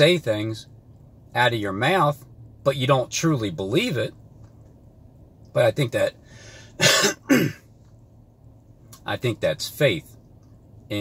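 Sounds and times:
man clearing his throat: 6.8 - 7.6.

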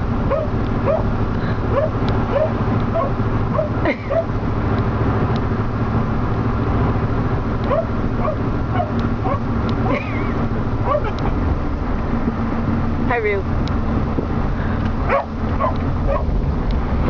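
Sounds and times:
engine and road noise drone: 0.0 - 17.0
dog whining and yipping: 0.3 - 1.1, 1.7 - 4.3, 7.7 - 9.5, 10.8 - 11.2, 15.1 - 16.3.

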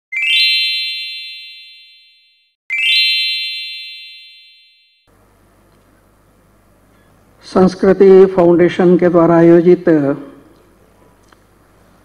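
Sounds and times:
electronic bell-like chime: 0.1 - 5.1.

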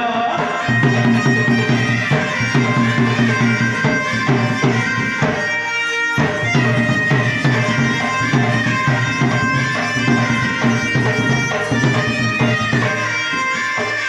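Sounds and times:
reedy wind instrument melody: 0.0 - 14.0
steady drum beat: 0.0 - 14.0.

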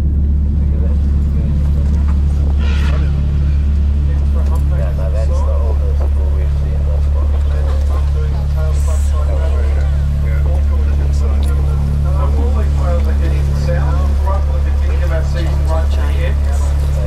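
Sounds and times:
deep bass drone: 0.0 - 17.0
pulsing bass notes: 0.0 - 17.0
layered spoken voices: 0.3 - 17.0.

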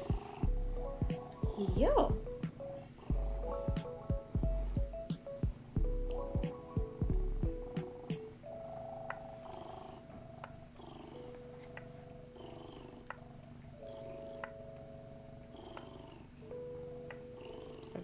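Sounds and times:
cat purring: 0.0 - 5.8, 6.4 - 18.0
soft music with long held notes: 0.0 - 18.0.

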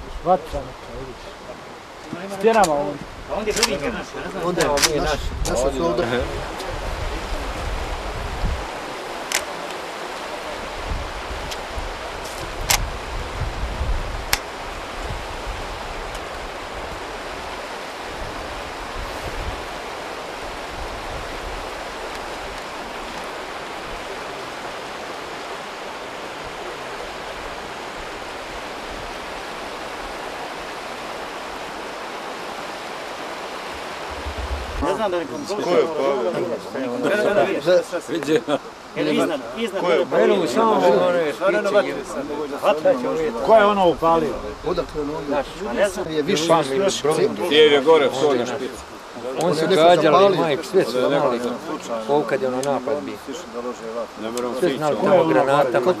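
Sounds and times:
steady background hiss: 0.0 - 56.0
low rumbling: 33.6 - 35.3.

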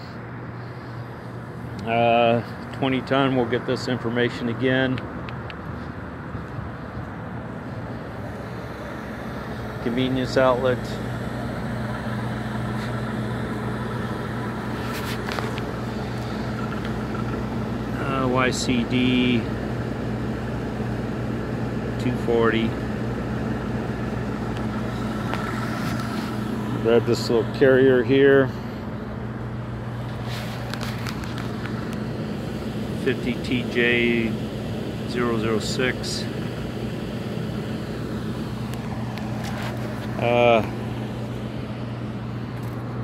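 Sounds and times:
hvac units humming: 0.0 - 43.0
machine drone: 0.0 - 43.0
handling clicks and rustles: 14.7 - 17.7, 30.0 - 32.1.

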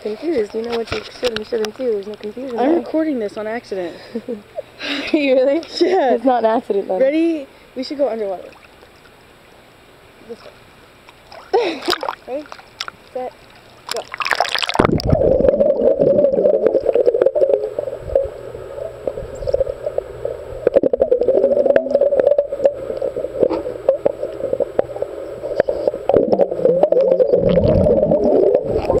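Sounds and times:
underwater bubbling: 10.5 - 29.0
muffled underwater drone: 14.8 - 29.0.

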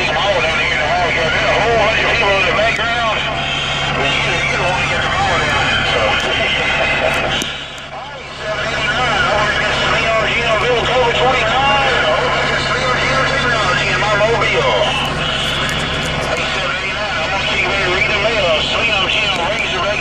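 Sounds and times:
radio hum and static: 0.0 - 20.0
voices over cb radio: 0.0 - 20.0
radio clicks: 14.9 - 16.5.

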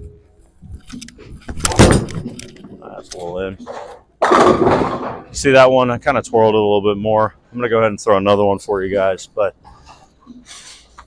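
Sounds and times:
bowling ball thud and rolling: 3.6 - 5.4.

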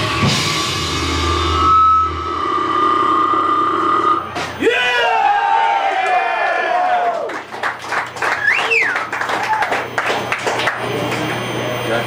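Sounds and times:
sustained guitar tone: 0.0 - 4.7.

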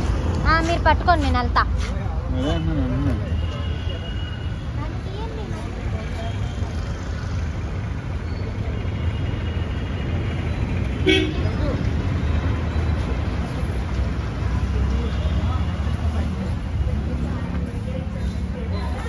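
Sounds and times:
street traffic rumble: 0.0 - 19.0
vehicle horn toot: 11.0 - 11.4.

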